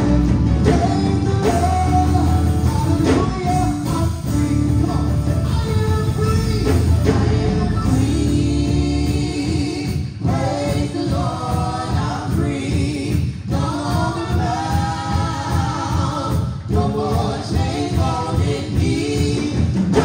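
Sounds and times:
gospel group singing over pa: 0.0s - 20.0s.

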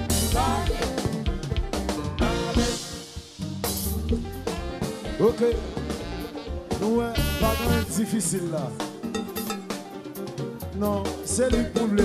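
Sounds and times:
bass guitar: 0.0s - 12.0s
drum kit: 0.0s - 12.0s
electric guitars: 0.0s - 12.0s
live band playing: 0.0s - 12.0s.

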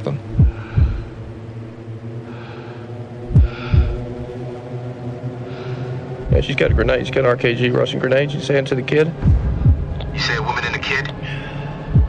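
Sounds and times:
steady low drone: 0.0s - 12.0s
heartbeat-like double thumps: 0.3s - 1.3s, 3.2s - 4.2s, 6.2s - 7.2s, 9.1s - 10.3s.

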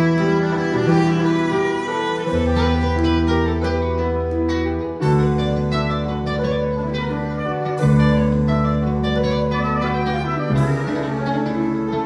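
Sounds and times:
electric guitar: 0.0s - 12.0s
held bass note: 0.0s - 12.0s
live band playing: 0.0s - 12.0s.

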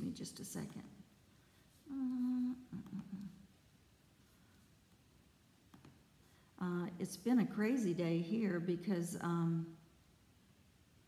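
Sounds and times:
woman humming: 1.8s - 3.5s
woman murmuring: 1.9s - 3.5s.

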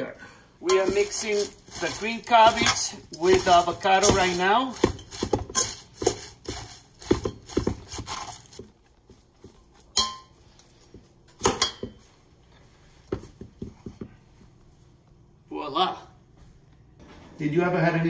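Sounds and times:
tongs tossing salad in bowl: 0.6s - 11.0s
metal clinking on bowl: 9.9s - 10.4s.

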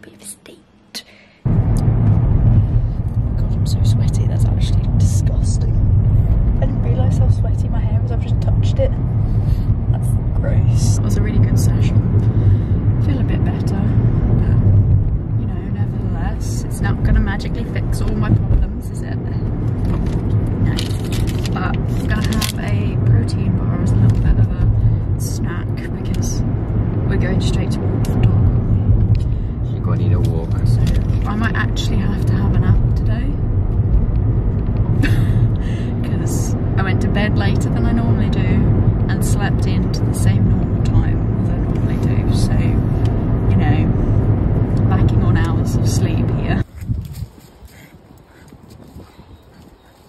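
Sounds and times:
people talking: 0.0s - 1.2s, 3.3s - 5.8s, 6.6s - 9.1s, 9.9s - 12.1s, 13.0s - 14.8s, 15.4s - 26.4s, 27.1s - 28.6s, 29.7s - 33.4s, 35.0s - 44.0s, 44.8s - 46.7s
car engine and tyres rumbling: 1.4s - 50.0s.

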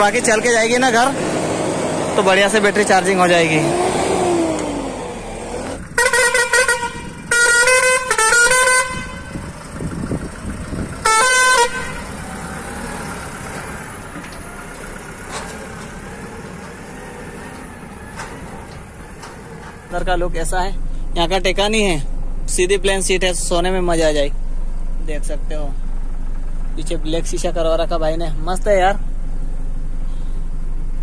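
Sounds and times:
diesel truck engine running: 0.0s - 31.0s
truck horn blasts: 5.8s - 9.7s, 11.0s - 12.2s.

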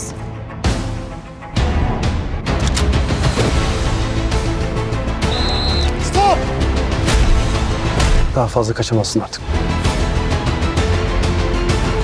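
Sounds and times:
tense trailer music: 0.0s - 12.0s.

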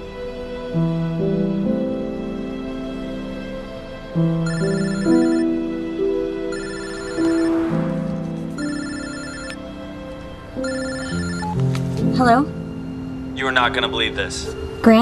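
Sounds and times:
slow background music: 0.0s - 15.0s
telephone trilling ringtone: 4.4s - 5.6s, 6.5s - 7.8s, 8.6s - 9.7s, 10.6s - 11.6s.

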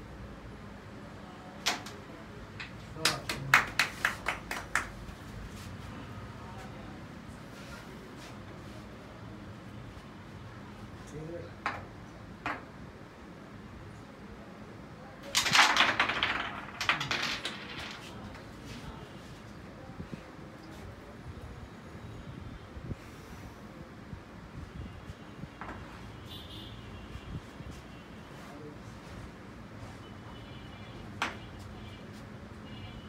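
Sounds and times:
carrom pieces clacking: 1.6s - 5.1s, 11.6s - 12.8s, 15.2s - 18.6s, 31.1s - 31.7s
quick sharp hand claps: 3.0s - 5.0s.

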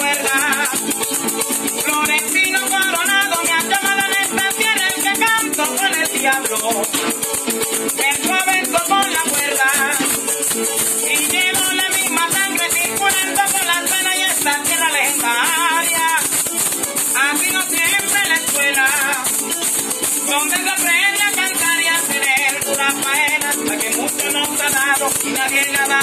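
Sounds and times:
maracas shaking: 0.0s - 26.0s
plucked strings: 0.0s - 26.0s.

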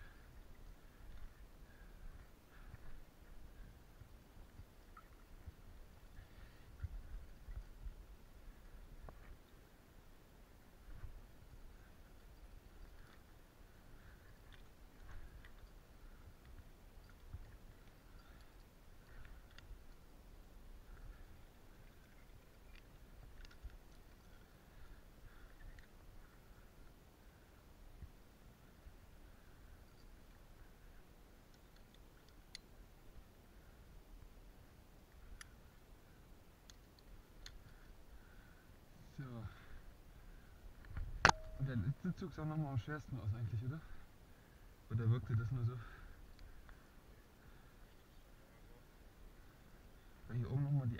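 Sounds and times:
faint clicks: 0.1s - 7.9s, 10.9s - 34.3s, 35.0s - 38.6s, 45.7s - 48.4s.

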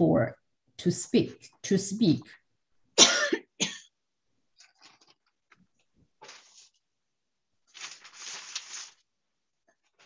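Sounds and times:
woman coughing: 3.0s - 3.9s.

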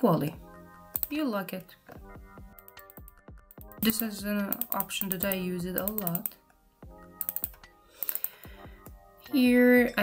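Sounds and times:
keyboard keys tapping: 2.6s - 6.5s, 7.2s - 8.3s.

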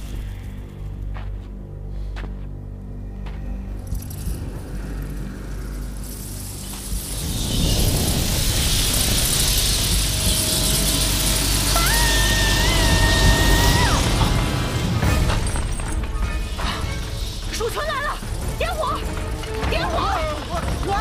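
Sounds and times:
low dark drone: 0.0s - 20.9s
rushing swarm of rats: 4.0s - 15.8s
woman screaming: 11.7s - 14.2s.

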